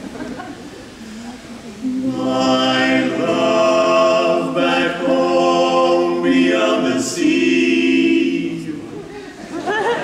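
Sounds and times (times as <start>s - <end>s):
male quartet singing a cappella: 1.9s - 9.0s.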